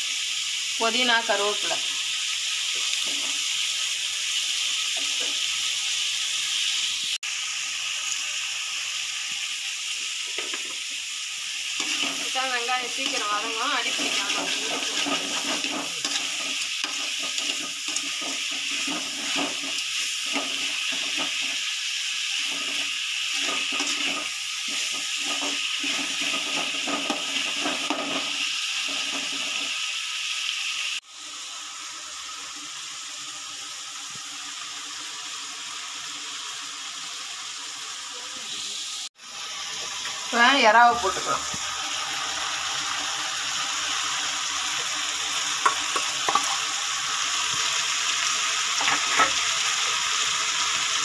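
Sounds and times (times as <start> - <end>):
vegetables sizzling in oil: 0.0 - 51.0
spatula stirring and scraping: 11.8 - 29.8.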